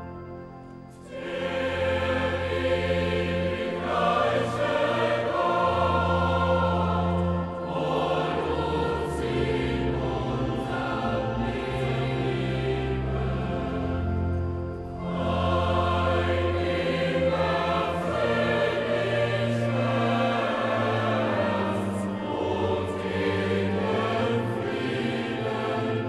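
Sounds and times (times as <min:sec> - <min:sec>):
choir singing sacred music: 0:00.0 - 0:26.0
long-held low bass notes: 0:01.6 - 0:26.0.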